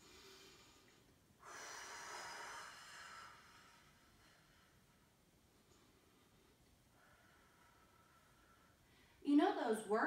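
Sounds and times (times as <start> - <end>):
woman breathing out: 0.0 - 4.9.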